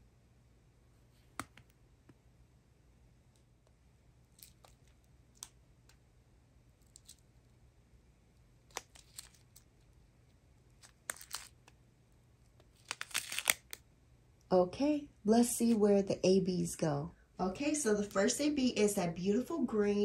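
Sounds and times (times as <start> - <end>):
plastic bags crinkling: 10.9 - 11.7, 12.7 - 13.8.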